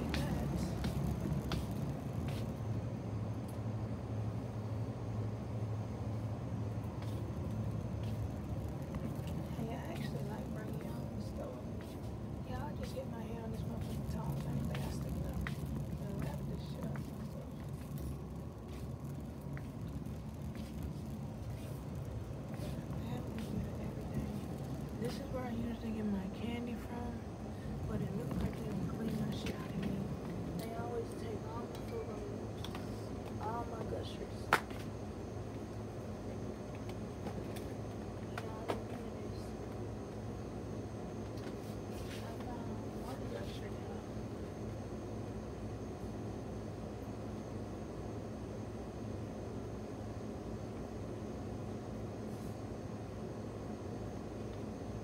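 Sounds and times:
shopping cart wheels rumbling: 0.0 - 2.5, 12.6 - 27.2, 27.8 - 31.7.

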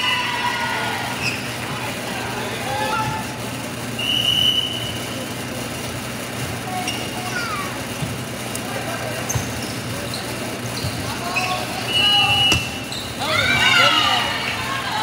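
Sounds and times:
players and spectators calling out: 0.0 - 15.0
steady low hum: 0.0 - 15.0
referee's whistle blast: 4.0 - 5.0, 11.9 - 12.9.

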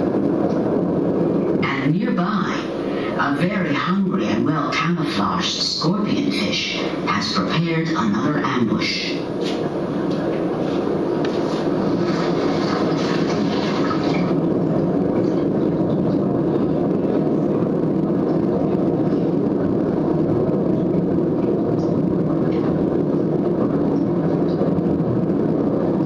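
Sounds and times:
low underwater rushing rumble: 0.0 - 26.0.

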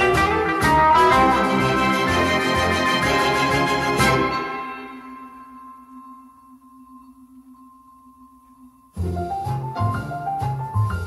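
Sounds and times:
loud music track: 0.0 - 5.2
orchestral chord ringing out: 0.0 - 6.0.

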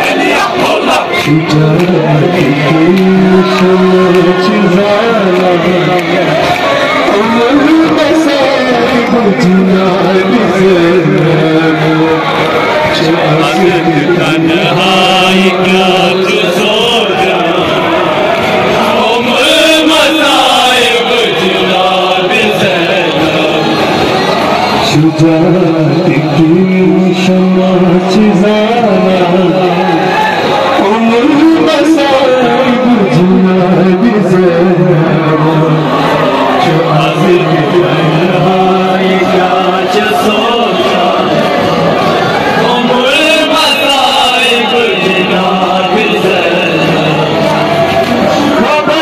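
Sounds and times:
men chanting a lament: 0.0 - 23.9, 24.9 - 49.0.

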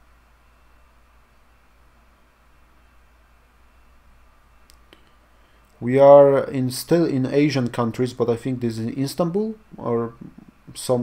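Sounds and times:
faint low hum: 0.0 - 11.0
man speaking: 5.8 - 11.0.

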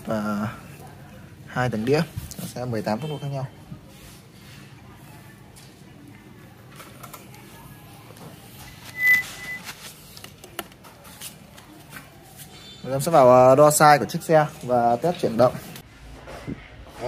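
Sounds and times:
high-pitched whistle-like tone: 8.9 - 9.7.

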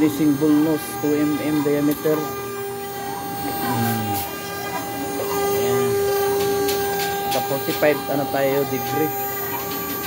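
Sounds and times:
cnc router whine: 0.0 - 10.0.

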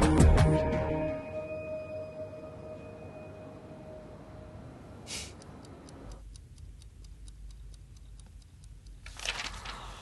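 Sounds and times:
alarm clock ticking: 5.4 - 9.0.

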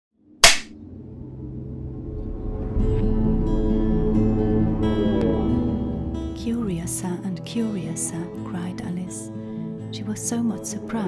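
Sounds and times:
soft music: 0.8 - 11.0.

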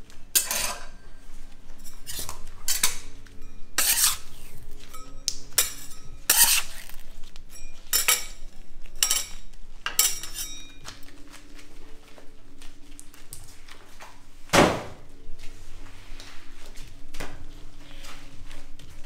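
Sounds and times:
metal scraper scraping steel table: 0.4 - 1.0, 1.9 - 3.0, 3.8 - 4.3, 5.6 - 6.9.

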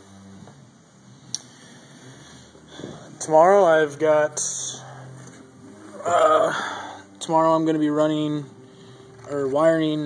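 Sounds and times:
faint background noise: 0.0 - 10.0.

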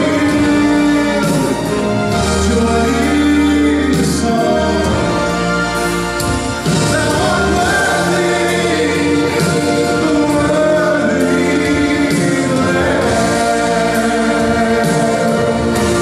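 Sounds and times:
man singing gospel: 0.0 - 5.7, 6.6 - 16.0
choir singing: 0.0 - 16.0.

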